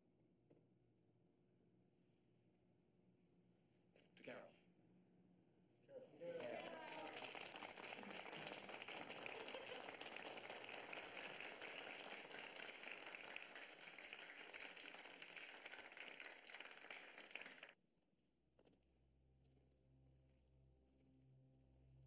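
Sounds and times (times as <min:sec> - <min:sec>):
people applauding: 0:05.9 - 0:17.8.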